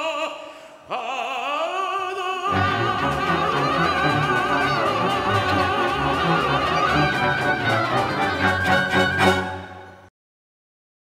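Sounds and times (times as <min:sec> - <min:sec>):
accented orchestral chords: 0:02.5 - 0:10.1
symphony orchestra playing: 0:02.5 - 0:10.1
violins holding a high note: 0:02.5 - 0:10.1.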